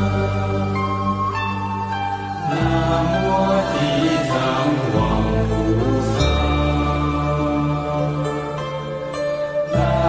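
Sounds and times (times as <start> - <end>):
slow devotional chanting: 2.4 - 9.0.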